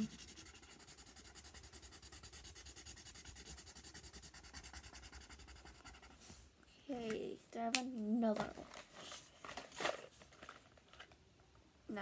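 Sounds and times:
marker scribbling on paper: 0.0s - 6.4s.

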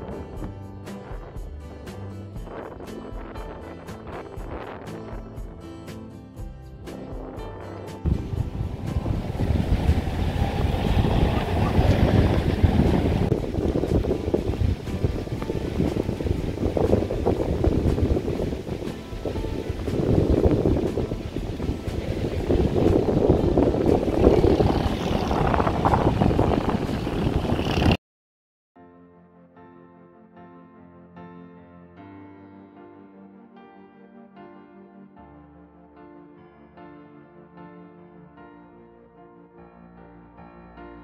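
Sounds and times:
background music: 0.0s - 27.7s, 28.8s - 41.0s
wind buffeting microphone: 8.0s - 28.0s.

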